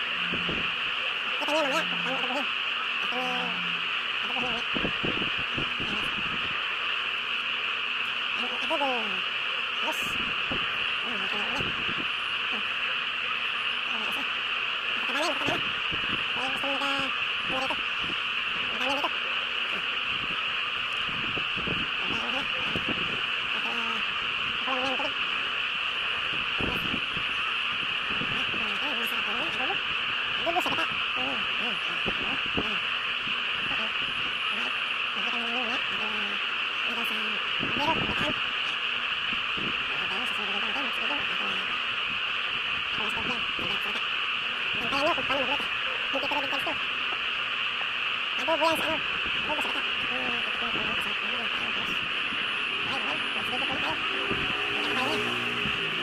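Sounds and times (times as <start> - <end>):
faint voices: 0.0 - 7.4, 8.0 - 47.6, 48.3 - 56.0
shrill insect drone: 0.0 - 56.0.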